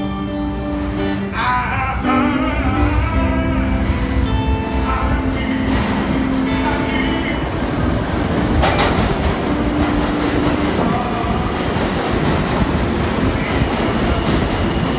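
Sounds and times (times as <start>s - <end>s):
subway train rumbling: 0.0s - 14.9s
wheels clattering over rails: 2.7s - 14.9s.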